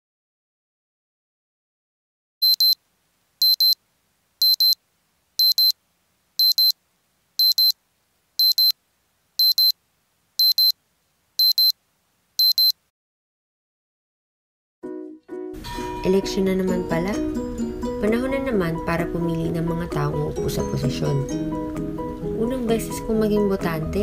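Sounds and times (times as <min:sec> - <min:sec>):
phone alarm beeping: 0:02.4 - 0:02.8, 0:03.4 - 0:03.8, 0:04.4 - 0:04.8, 0:05.4 - 0:05.7, 0:06.4 - 0:06.7, 0:07.4 - 0:07.8, 0:08.4 - 0:08.7, 0:09.4 - 0:09.7, 0:10.4 - 0:10.8, 0:11.4 - 0:11.7, 0:12.4 - 0:12.8.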